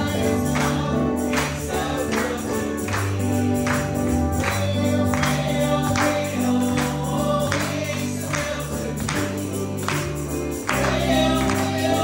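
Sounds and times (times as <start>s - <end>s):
bass and keyboard: 0.0s - 12.0s
gospel singing: 0.0s - 12.0s
tambourine: 0.0s - 12.0s.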